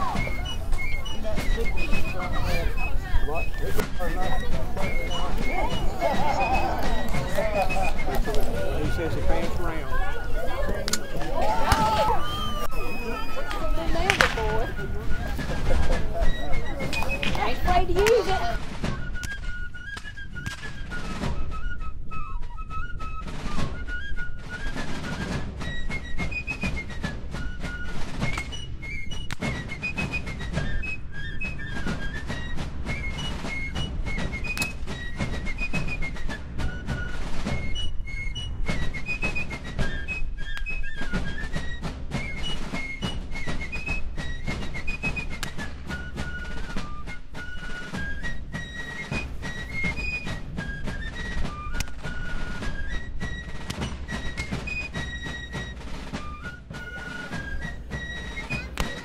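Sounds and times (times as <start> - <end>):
steady drumbeats: 0.0 - 59.0.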